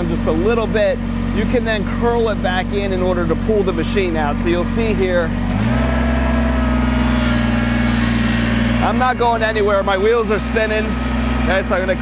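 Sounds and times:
tractor diesel engine revving: 0.0 - 12.0.

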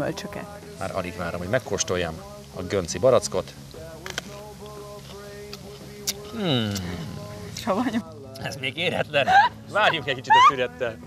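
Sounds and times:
soft background music: 0.0 - 11.0
crisp clicks of biting apricot: 4.0 - 7.7.

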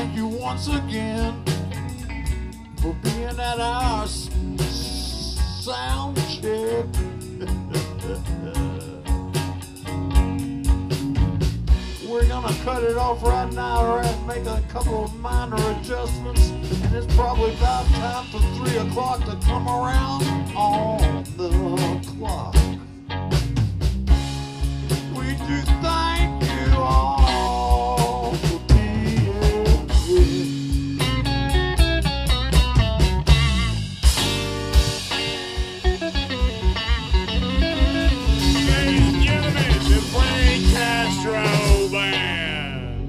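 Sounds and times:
drum kit steady beat: 0.0 - 42.7
bass guitar: 0.0 - 43.0
electric guitar lead: 0.0 - 43.0.

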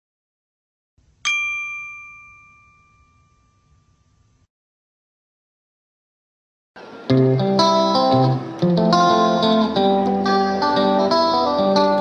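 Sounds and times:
metallic ding: 1.2 - 4.5.

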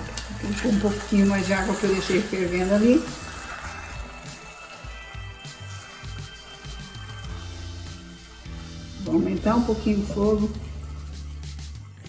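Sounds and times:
background music with bass: 2.5 - 12.0.

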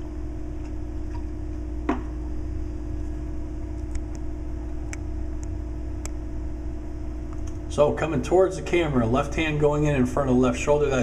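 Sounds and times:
faint steady tone: 0.0 - 7.2
low room hum: 0.0 - 11.0.

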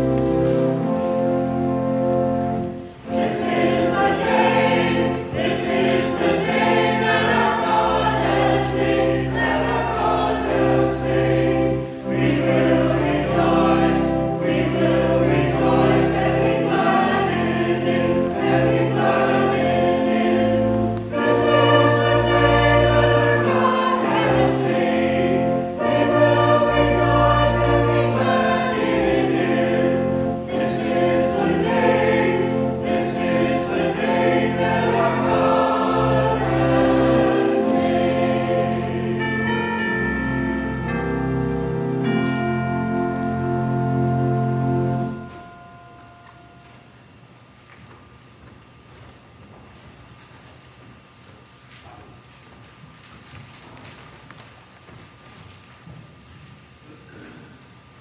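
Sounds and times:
choir singing: 3.0 - 46.3.

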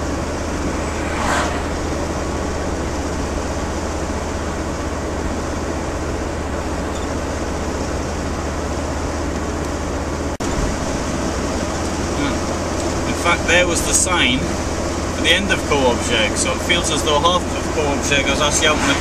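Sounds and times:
low hum: 0.0 - 7.0
engine and road noise in cabin: 0.0 - 19.0.

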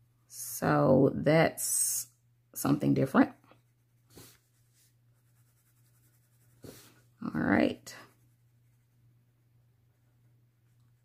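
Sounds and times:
pencil scratching on paper: 3.3 - 11.0.

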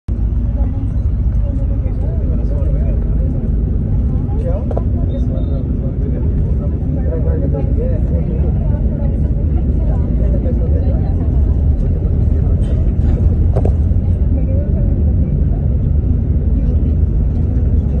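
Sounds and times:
indistinct voices talking: 0.1 - 18.0
vehicle rumble from inside cabin: 0.1 - 18.0.

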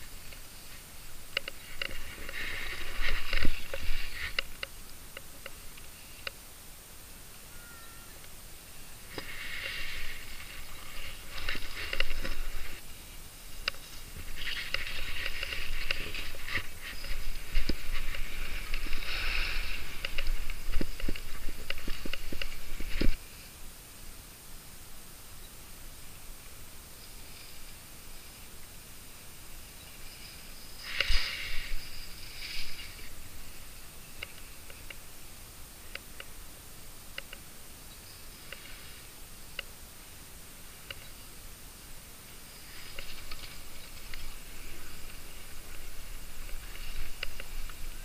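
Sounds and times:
skis scraping over snow: 0.0 - 4.6, 9.1 - 23.5, 29.7 - 33.8, 42.5 - 48.0.

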